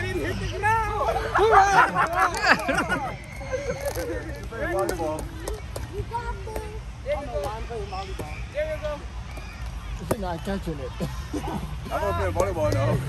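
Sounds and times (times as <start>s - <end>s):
people calling and chattering: 0.0s - 13.0s.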